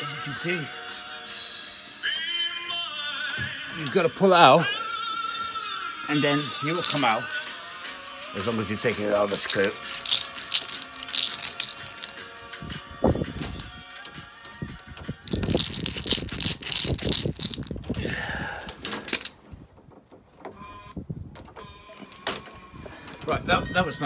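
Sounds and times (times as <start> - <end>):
background music: 0.0 - 19.4
metal lock clicking and rattling: 18.7 - 19.6.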